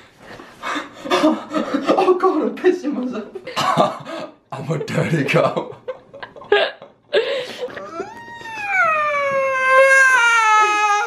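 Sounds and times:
person squealing with laughter: 0:07.7 - 0:11.0.

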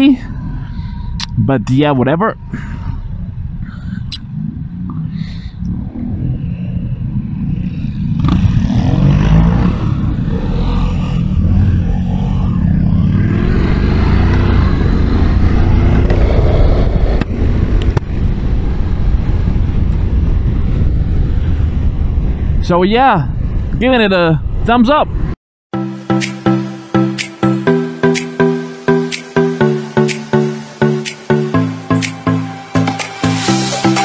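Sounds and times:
wind rushing over microphone: 0:00.0 - 0:25.4
motorcycle engine accelerating: 0:04.2 - 0:22.2.

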